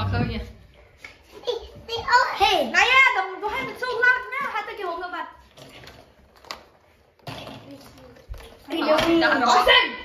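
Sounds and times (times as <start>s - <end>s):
child speaking: 1.3s - 5.4s, 7.4s - 10.0s.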